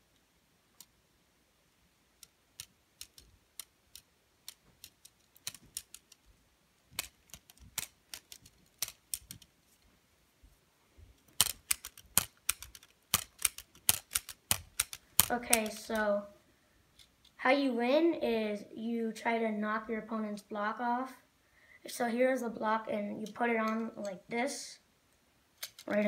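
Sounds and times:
plastic parts clicking and clacking: 2.2s - 6.3s, 6.9s - 9.8s, 11.2s - 16.0s, 25.6s - 26.0s.

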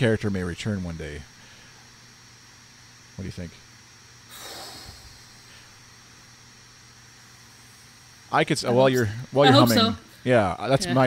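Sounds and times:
person exhaling into microphone: 4.3s - 5.6s.

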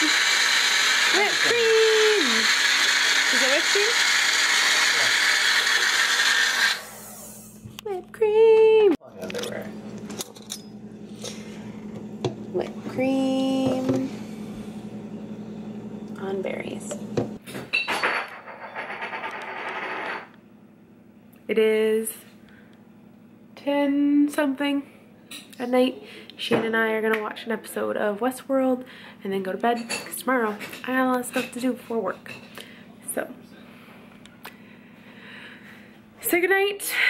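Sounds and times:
blender running: 0.0s - 7.6s, 11.0s - 17.4s.

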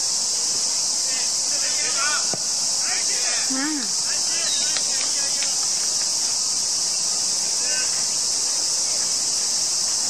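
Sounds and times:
high-pitched insects chorus: 0.0s - 10.0s
people shouting: 1.1s - 5.4s.

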